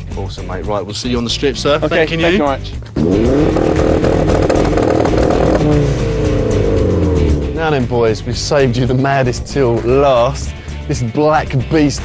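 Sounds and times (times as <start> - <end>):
car engine revving: 2.8 - 10.9.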